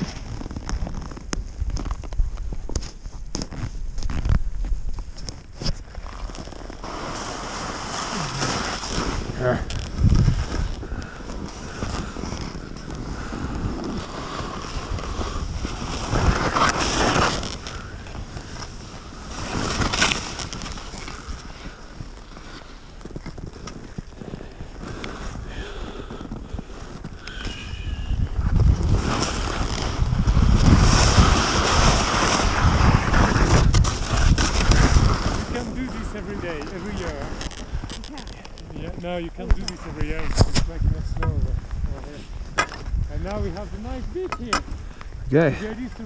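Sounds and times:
wind rushing over microphone: 0.0 - 22.4, 23.1 - 46.0
skis hissing through powder snow: 6.1 - 23.0, 24.2 - 38.0.

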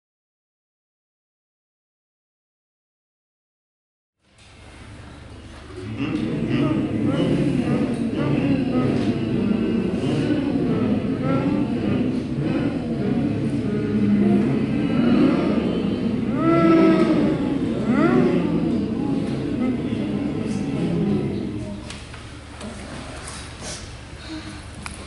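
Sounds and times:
group of voices sliding tones: 5.4 - 22.0.

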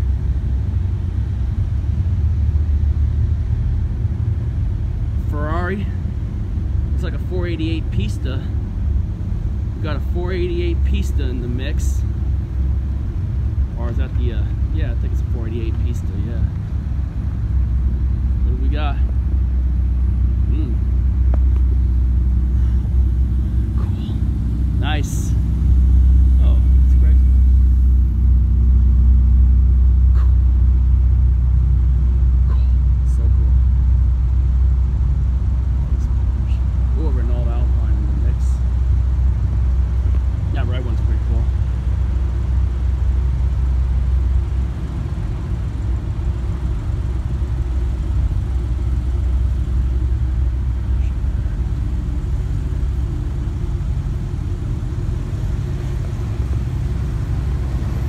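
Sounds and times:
car engines rumbling: 0.0 - 58.0.

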